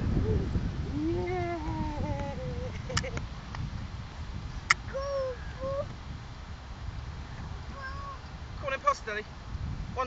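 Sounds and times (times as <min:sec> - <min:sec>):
wind rumble on microphone: 0:00.0 - 0:10.0
toddler wordless vocal sound: 0:04.8 - 0:05.9, 0:07.7 - 0:08.3.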